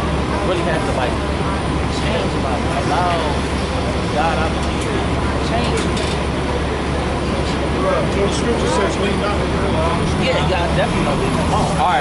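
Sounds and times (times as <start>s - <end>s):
buses running: 0.0s - 12.0s
faint talk: 0.0s - 12.0s
street traffic rumble: 0.0s - 12.0s.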